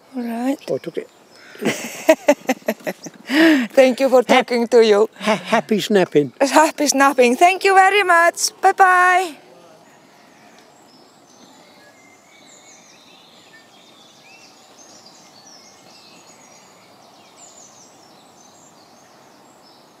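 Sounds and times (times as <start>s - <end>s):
faint steady background hiss: 0.0s - 20.0s
songbirds singing and chirping: 0.0s - 20.0s.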